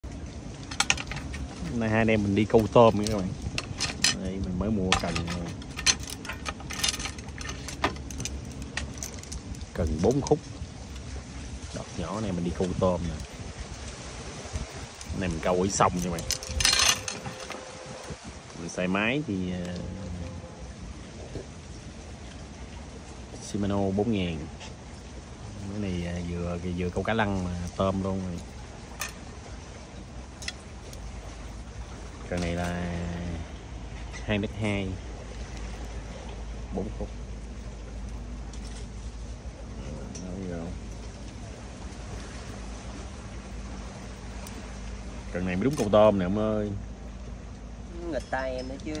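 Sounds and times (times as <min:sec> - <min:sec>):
low steady rumble: 0:00.0 - 0:49.0
fishing rod and reel clicking: 0:12.7 - 0:18.1.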